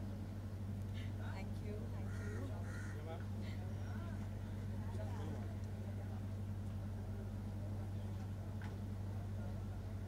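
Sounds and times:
steady low hum: 0:00.0 - 0:10.0
faint background voices: 0:00.9 - 0:10.0
crow cawing: 0:02.0 - 0:03.2.

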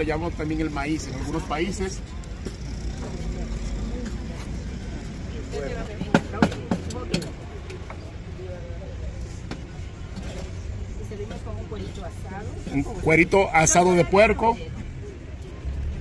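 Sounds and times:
faint voices: 0:00.0 - 0:16.0
low traffic rumble: 0:00.0 - 0:16.0.

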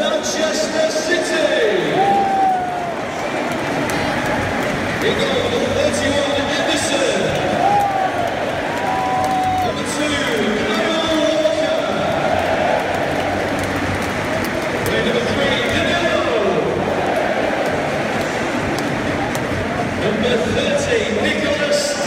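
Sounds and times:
stadium crowd singing and shouting: 0:00.0 - 0:22.0.

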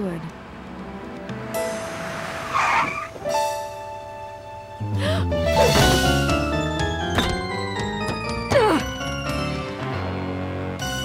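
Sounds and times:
background music with held chords: 0:00.0 - 0:02.4, 0:03.2 - 0:11.0
car tyres screeching: 0:01.4 - 0:03.4.

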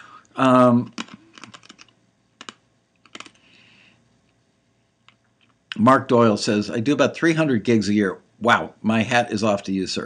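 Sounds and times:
faint hiss: 0:00.0 - 0:01.4
keyboard key clicks: 0:01.0 - 0:03.3.

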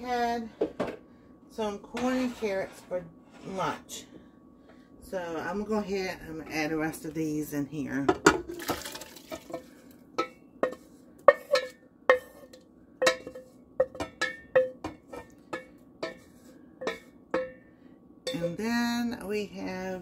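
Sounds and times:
wooden spoon scraping pan: 0:01.9 - 0:04.0.

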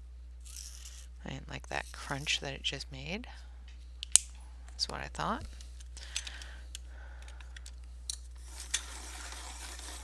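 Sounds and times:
pencil sharpener scraping: 0:08.4 - 0:10.0.

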